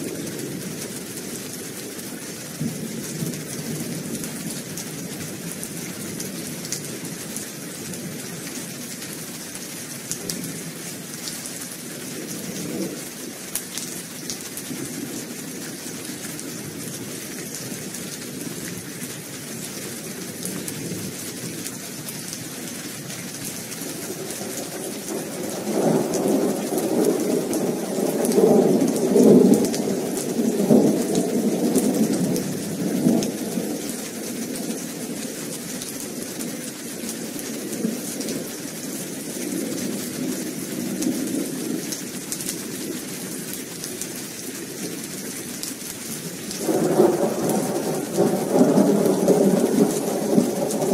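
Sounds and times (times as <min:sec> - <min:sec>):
steady rain: 0:00.0 - 0:50.9
rolling thunder: 0:24.0 - 0:33.8, 0:46.6 - 0:50.9.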